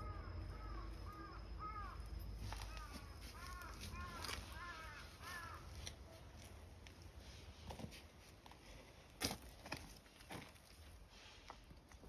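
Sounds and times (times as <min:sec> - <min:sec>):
crow cawing: 0:00.0 - 0:05.8.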